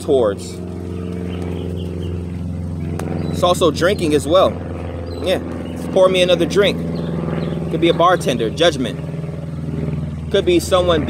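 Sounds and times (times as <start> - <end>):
engine drone: 0.0 - 11.0.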